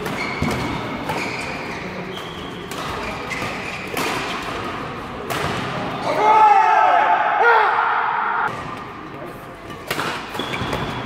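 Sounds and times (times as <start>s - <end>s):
rackets hitting shuttlecock: 0.0s - 5.8s, 9.6s - 11.0s
player shouting: 6.1s - 8.5s.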